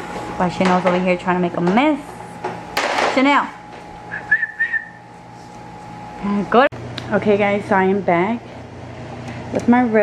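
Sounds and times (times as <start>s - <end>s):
high thin wavering whistle: 4.1s - 5.0s.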